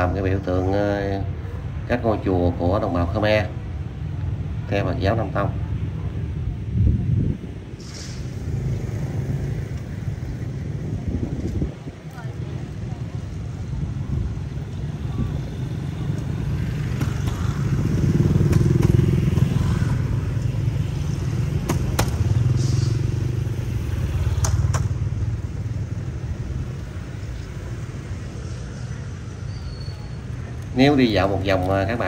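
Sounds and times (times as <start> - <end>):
motorbike engines rumbling: 0.0 - 32.0.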